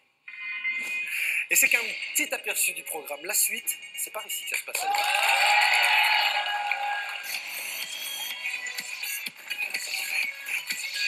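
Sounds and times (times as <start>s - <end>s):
tv jingle with synth notes: 0.3s - 11.0s
studio audience applauding: 4.7s - 10.2s.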